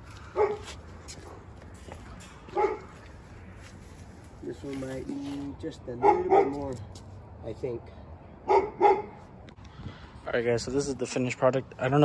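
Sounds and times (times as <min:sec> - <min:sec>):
dog barking: 0:00.4 - 0:01.4, 0:02.5 - 0:03.0, 0:06.0 - 0:06.7, 0:08.4 - 0:09.2.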